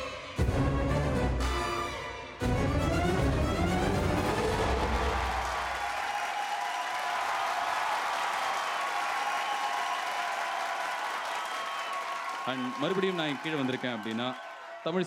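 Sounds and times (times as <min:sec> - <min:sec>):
audience applauding and cheering: 0:02.6 - 0:15.0.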